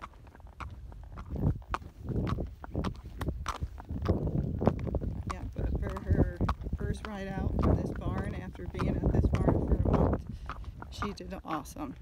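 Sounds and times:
hooves clip-clopping on pavement: 0:00.0 - 0:12.0.

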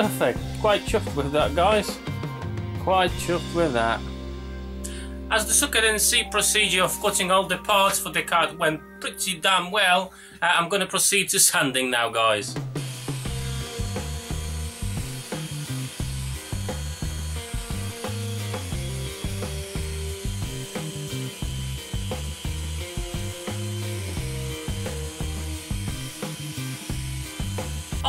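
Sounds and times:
orbital sander hissing on wood: 0:00.0 - 0:02.0, 0:12.7 - 0:28.0
background music with beat: 0:00.0 - 0:09.4, 0:12.4 - 0:28.0.

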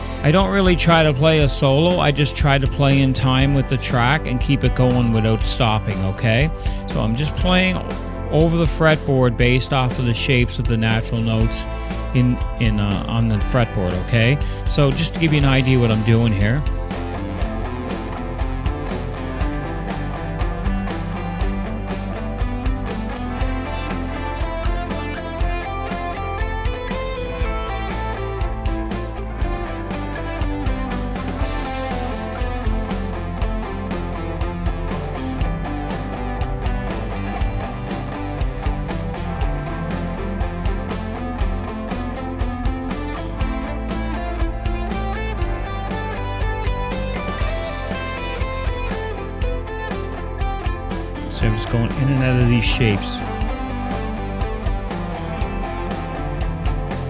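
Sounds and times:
backing track with regular beat: 0:00.0 - 0:57.0
electric guitar picking scale runs: 0:15.2 - 0:57.0.

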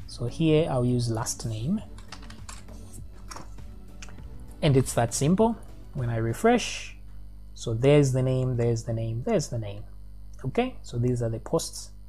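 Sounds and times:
soft background music: 0:00.0 - 0:09.8
computer keyboard typing: 0:01.9 - 0:04.2.

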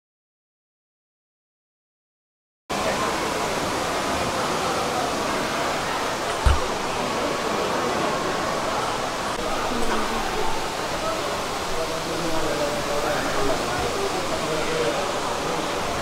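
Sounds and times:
falling water rushing: 0:02.7 - 0:16.0
murmur of voices: 0:02.7 - 0:16.0
low thump: 0:06.3 - 0:06.9.

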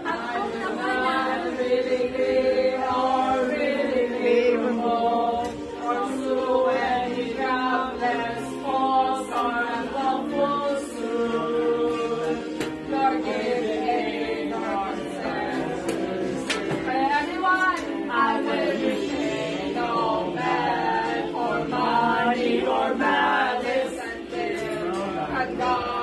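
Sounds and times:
people singing into karaoke microphone: 0:00.0 - 0:26.0.

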